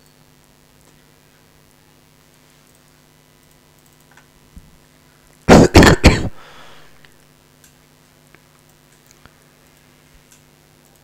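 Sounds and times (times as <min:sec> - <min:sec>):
man coughing: 0:05.5 - 0:06.5.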